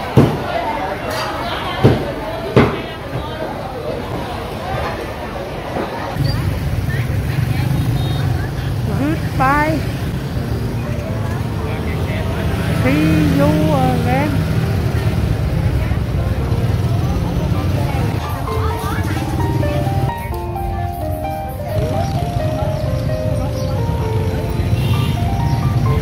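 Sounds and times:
motorbike traffic rumble: 0.0s - 26.0s
voices calling: 6.2s - 26.0s
music: 9.0s - 26.0s.

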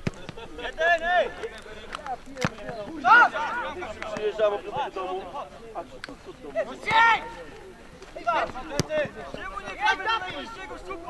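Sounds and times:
men shouting: 2.8s - 5.3s, 6.5s - 7.5s, 8.2s - 11.0s.

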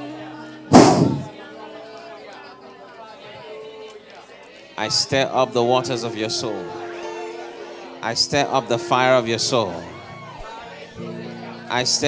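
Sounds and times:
congregation murmuring prayers: 0.0s - 12.0s
loud microphone burst: 0.7s - 1.3s.

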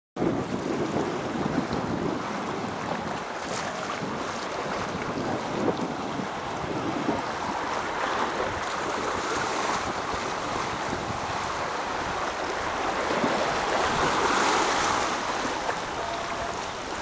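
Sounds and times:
sea washing: 0.2s - 17.0s
wind buffeting microphone: 0.2s - 17.0s.

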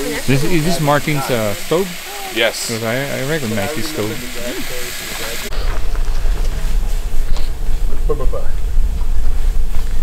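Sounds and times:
food sizzling in a frying pan: 0.0s - 5.7s
wind rumble on microphone: 5.5s - 10.0s.

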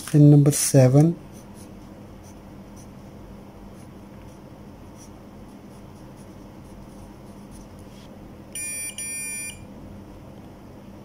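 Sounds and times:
multimeter continuity beeps: 8.6s - 9.7s.

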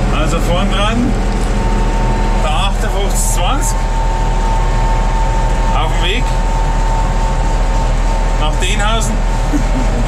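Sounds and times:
steady high whine: 0.0s - 10.0s
tractor diesel engine droning: 0.0s - 10.0s.

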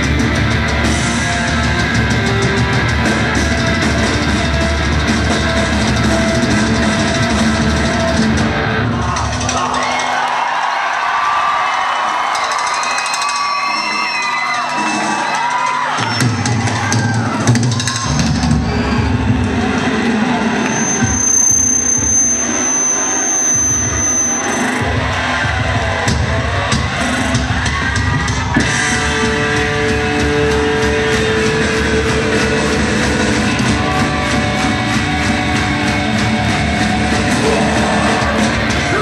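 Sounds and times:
metalcore band playing loudly: 0.0s - 10.3s, 12.2s - 39.0s
crowd cheering and whooping: 0.0s - 39.0s.

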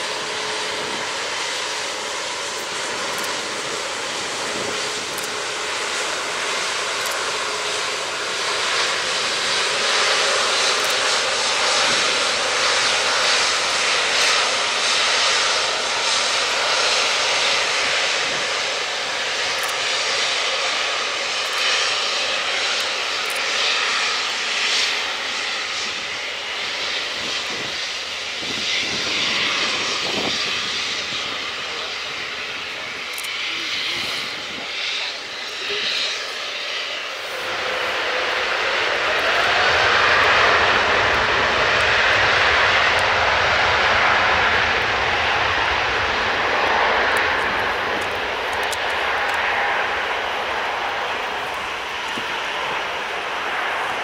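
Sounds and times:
jet engines spooling up: 0.0s - 54.0s.

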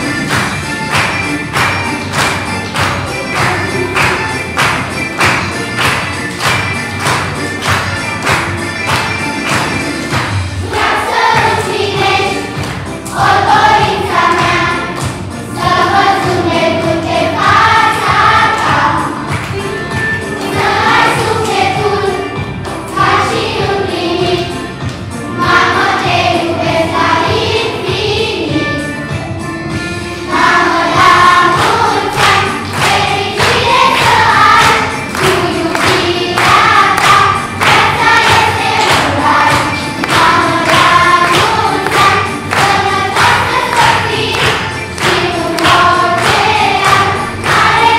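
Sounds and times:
children's choir singing: 0.0s - 29.4s, 30.0s - 47.9s.

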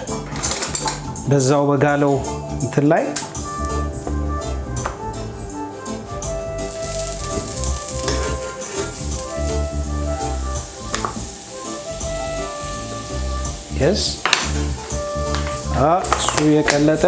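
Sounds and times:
background music: 0.0s - 17.0s
butter sizzling in a frying pan: 6.6s - 16.6s.

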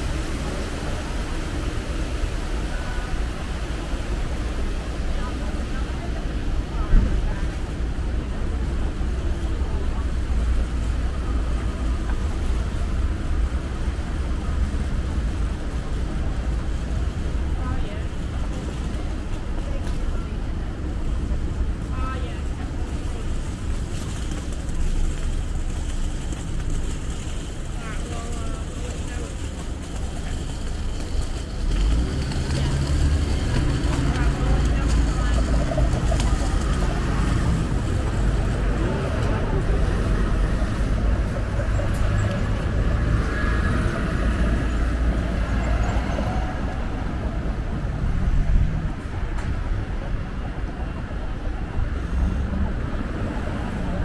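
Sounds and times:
street traffic: 0.0s - 54.0s.

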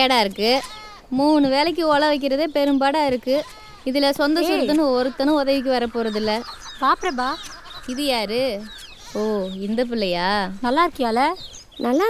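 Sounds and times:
hens clucking: 3.3s - 12.0s.

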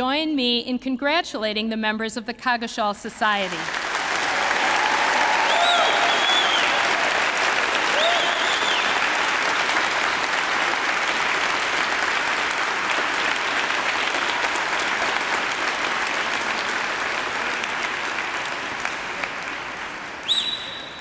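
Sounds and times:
large audience applauding: 3.4s - 21.0s.

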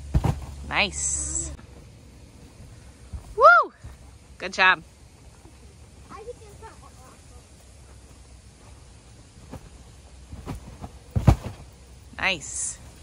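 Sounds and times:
thumps on trampoline mat: 0.0s - 0.7s, 10.3s - 11.7s.

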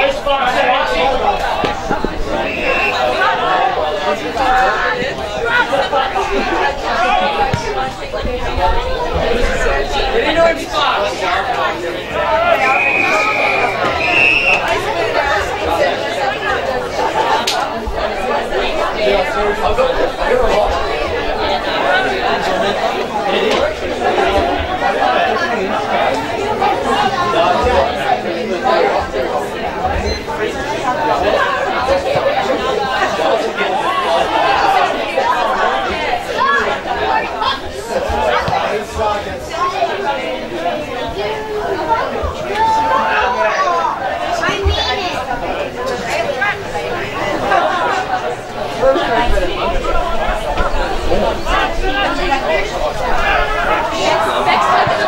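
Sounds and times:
crowd chatter: 0.0s - 55.0s.

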